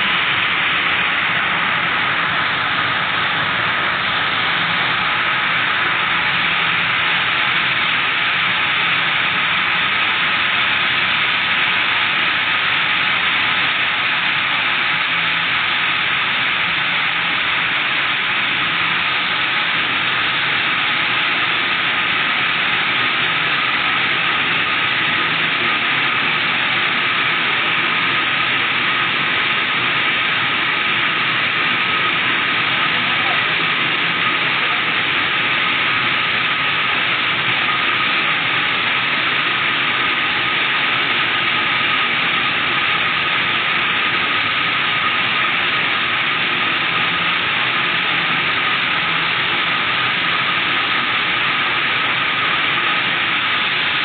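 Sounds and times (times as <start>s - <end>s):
spinning machines whirring: 0.0s - 54.0s.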